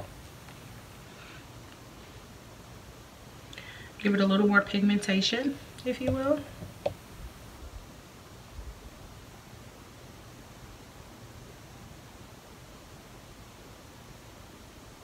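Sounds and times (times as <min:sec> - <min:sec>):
faint room tone hiss: 0:00.0 - 0:15.0.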